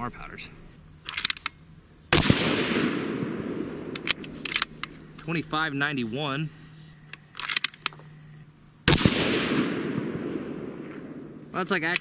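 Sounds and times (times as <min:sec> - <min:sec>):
rifle shot: 0:02.1 - 0:05.2, 0:08.8 - 0:11.4
short clicks: 0:03.9 - 0:05.3.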